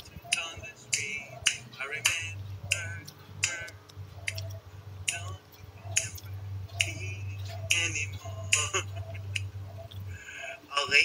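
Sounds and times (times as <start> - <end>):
fingers snapping: 0.3 - 5.4, 6.0 - 7.0.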